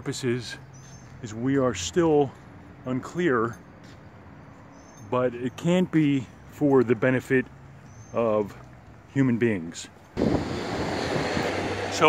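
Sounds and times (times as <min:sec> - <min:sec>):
steady rushing noise: 0:10.2 - 0:12.0.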